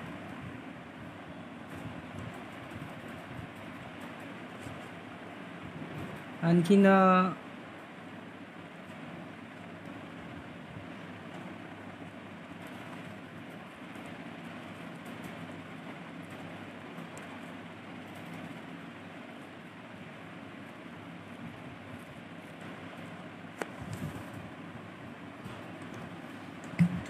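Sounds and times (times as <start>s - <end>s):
faint hum: 0.0s - 27.0s.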